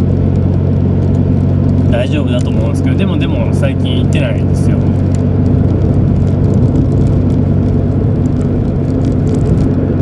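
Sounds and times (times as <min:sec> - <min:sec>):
car engine drone: 0:00.0 - 0:10.0.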